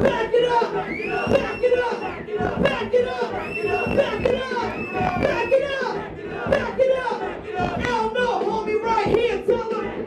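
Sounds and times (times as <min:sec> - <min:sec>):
crowd noise: 0:00.0 - 0:10.0
woman rapping into a microphone: 0:00.0 - 0:10.0.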